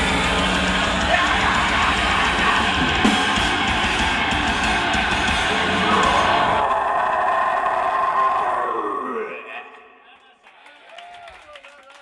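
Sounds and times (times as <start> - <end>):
distorted electric guitar: 0.0 - 8.8
drums: 0.0 - 8.9.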